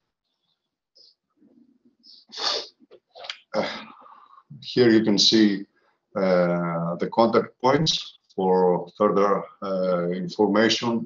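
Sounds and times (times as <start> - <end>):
faint hiss: 2.1 - 5.6
sharp burst of breath: 2.3 - 2.7.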